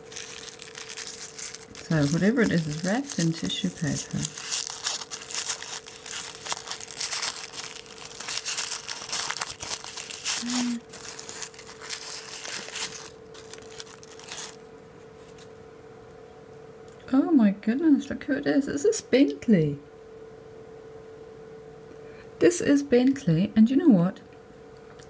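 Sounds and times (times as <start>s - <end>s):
tissue paper crinkling: 0.0s - 15.5s.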